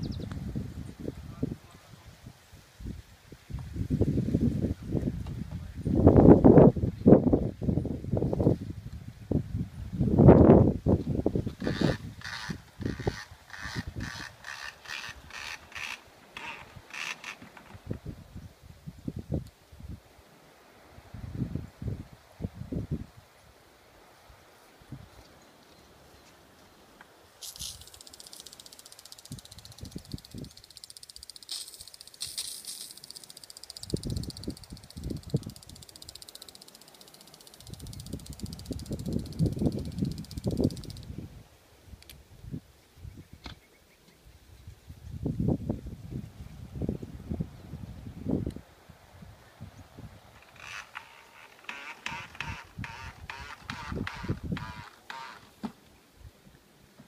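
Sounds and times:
wind gusts on microphone: 0:00.0 - 0:25.3, 0:29.2 - 0:30.6, 0:33.7 - 0:36.2, 0:37.6 - 0:43.6, 0:44.2 - 0:55.1
water spraying from sprinkler: 0:27.4 - 0:41.0.

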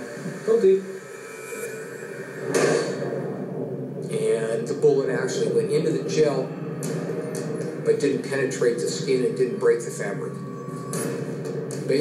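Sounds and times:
faint steady background noise: 0:00.0 - 0:12.0
gunshot: 0:02.5 - 0:03.1.

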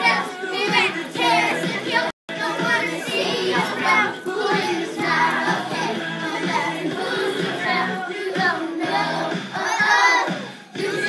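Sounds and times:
children singing and shouting: 0:00.0 - 0:11.0
pop backing track: 0:00.0 - 0:11.0.

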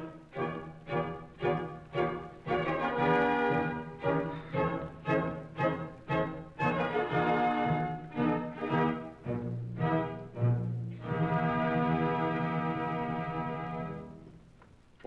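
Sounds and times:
orchestra playing detached chords: 0:00.0 - 0:14.2.

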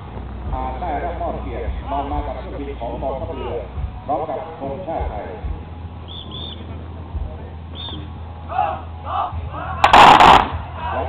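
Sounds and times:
rifle volley: 0:09.8 - 0:10.7.

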